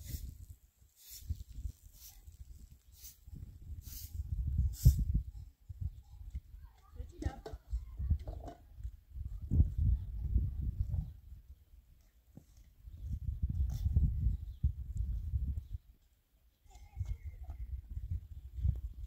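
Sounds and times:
wind buffeting microphone: 1.2 - 11.6, 12.8 - 15.9, 16.8 - 19.0.

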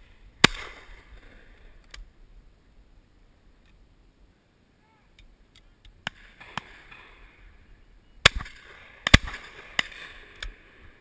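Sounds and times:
shotgun shots: 0.4 - 1.0, 8.2 - 10.4.

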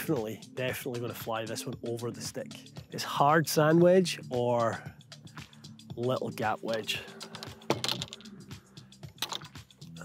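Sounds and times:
soft background music: 0.0 - 10.0
golf clubs clinking together: 6.6 - 8.4, 9.1 - 9.6.

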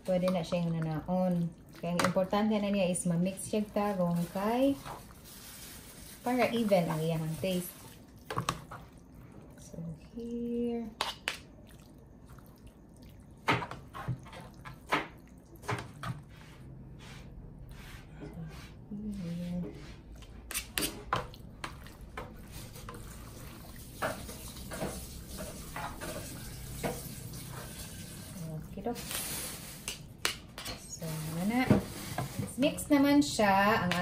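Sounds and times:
wet squishing of pasta: 0.0 - 16.4, 20.1 - 29.1.

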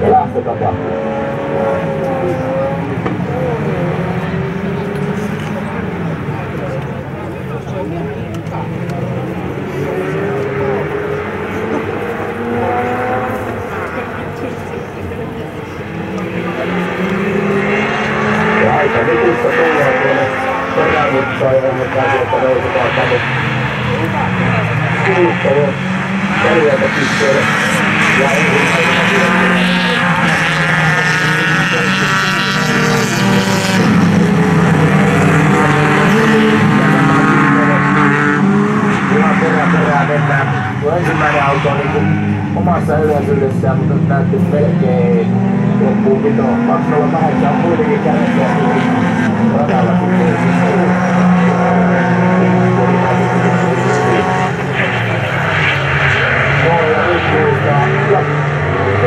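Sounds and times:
racing car engines revving: 0.0 - 59.0.

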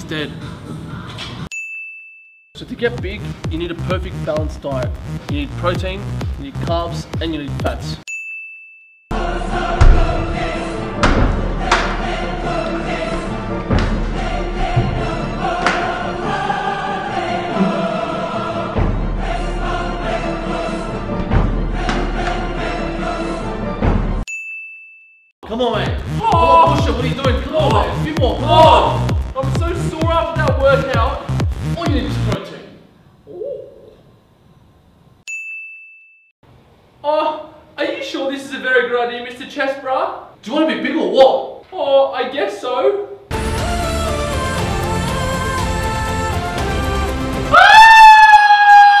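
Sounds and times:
high ding: 1.5 - 2.5, 8.1 - 9.0, 24.3 - 25.2, 35.3 - 36.3
background music: 2.6 - 8.1, 9.1 - 24.3, 25.4 - 32.4, 43.3 - 49.0
dramatic orchestral music: 9.2 - 24.2.

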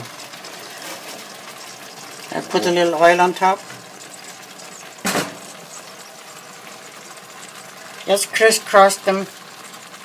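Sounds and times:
kitchen hum: 0.0 - 10.0.

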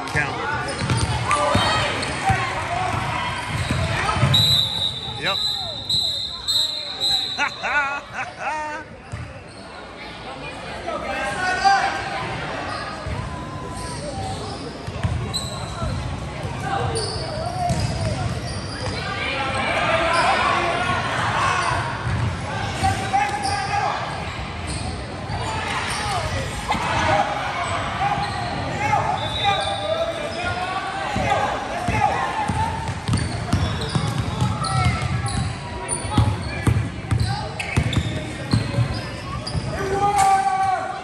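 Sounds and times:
sneakers squeaking on floor: 0.4 - 7.6, 9.0 - 10.0, 11.4 - 20.6, 21.4 - 40.2.

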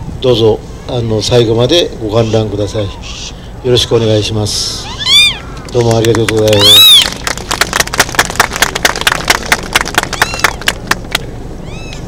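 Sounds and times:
audience clapping: 5.6 - 11.2.

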